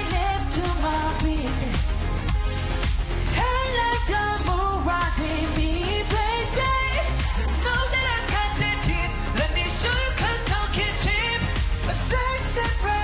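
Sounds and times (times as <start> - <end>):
male group singing dance-pop: 0.0 - 13.0
steady beat with heavy bass: 0.0 - 13.0.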